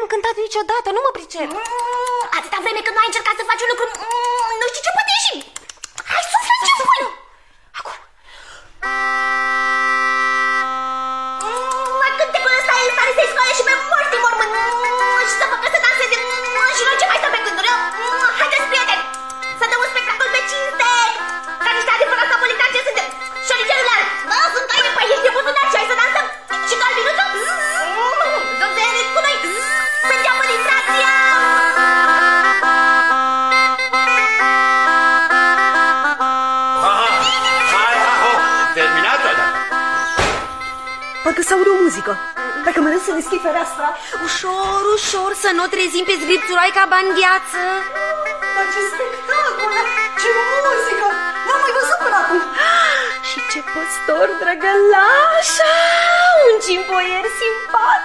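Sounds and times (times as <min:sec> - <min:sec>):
bagpipe chord of higher notes: 0:08.8 - 0:58.0
bagpipe drone: 0:08.8 - 0:58.0.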